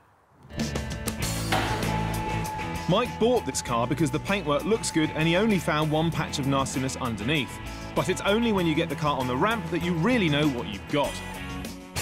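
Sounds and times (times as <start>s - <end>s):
car lift motor humming: 1.5s - 3.4s
steady whine: 1.5s - 6.5s.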